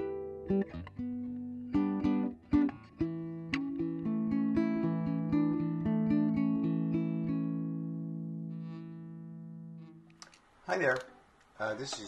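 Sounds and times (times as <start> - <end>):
fingerstyle guitar picking: 0.0 - 10.2.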